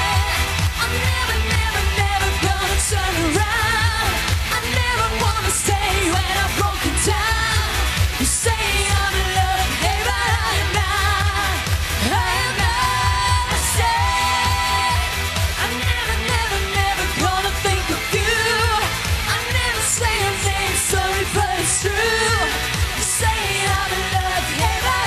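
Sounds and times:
pop-rock band playing: 0.0s - 25.0s
woman singing: 0.0s - 25.0s.

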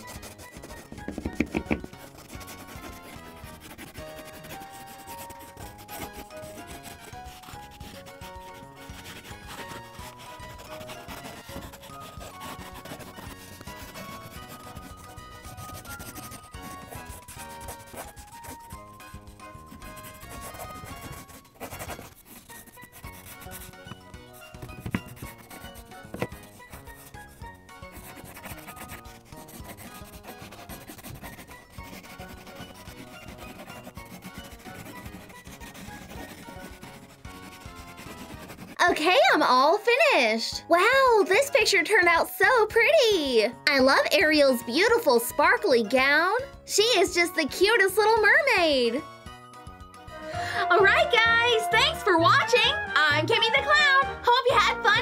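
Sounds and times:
pencil scribbling on paper: 0.0s - 49.2s
light background music: 0.0s - 55.0s.

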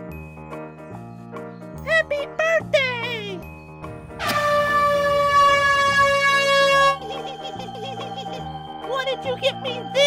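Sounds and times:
party blower reedy note: 4.2s - 7.0s.

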